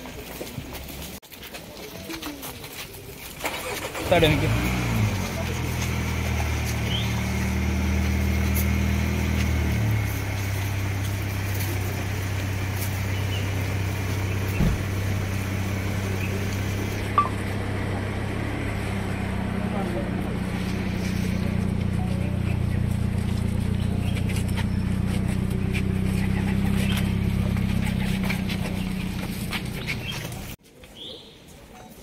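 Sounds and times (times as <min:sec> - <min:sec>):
people talking: 0:00.0 - 0:32.0
car engine idling: 0:03.4 - 0:30.6
thump: 0:14.6 - 0:14.8.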